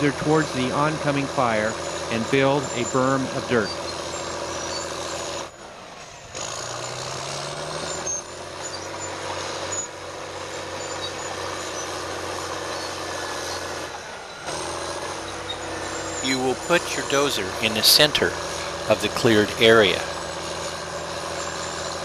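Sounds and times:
blade pushing dirt: 0.0 - 22.0
bulldozer diesel engine under load: 0.0 - 22.0.

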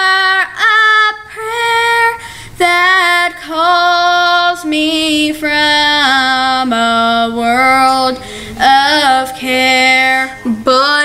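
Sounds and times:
girl singing gospel song: 0.0 - 11.0
girl breathing: 2.2 - 2.6, 8.1 - 8.6.

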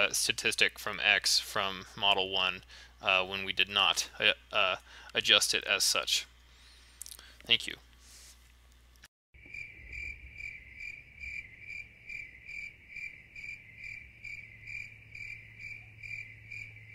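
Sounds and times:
faint low hum: 0.0 - 16.9
cricket chirping: 9.4 - 16.9.

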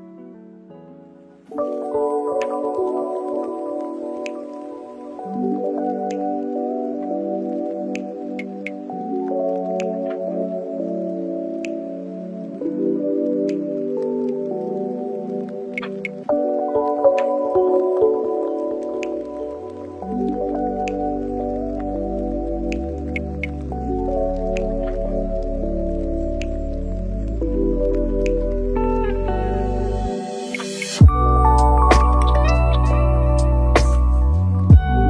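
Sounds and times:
calm instrumental music: 0.0 - 35.0.

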